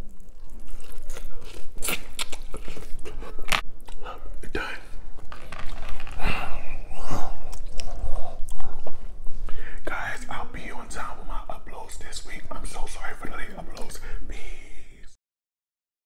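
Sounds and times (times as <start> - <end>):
chewing with lip smacks: 0.0 - 4.1, 7.4 - 9.0.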